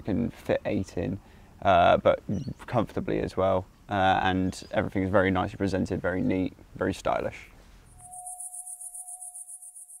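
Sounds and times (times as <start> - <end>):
high rapid insect-like chirring: 7.9 - 10.0
steady held tone: 7.9 - 10.0.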